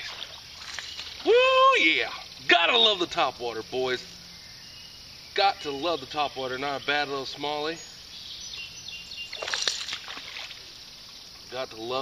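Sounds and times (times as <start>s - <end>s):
faint high bird chirps: 4.0s - 10.1s.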